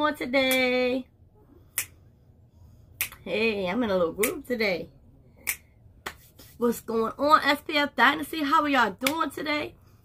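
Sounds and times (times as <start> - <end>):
finger snap: 1.7 - 2.0, 3.0 - 3.2, 5.4 - 6.2.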